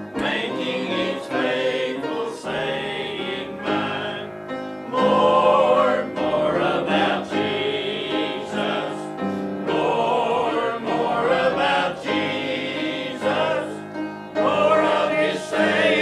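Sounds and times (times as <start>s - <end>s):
mixed choir singing a hymn: 0.0s - 16.0s.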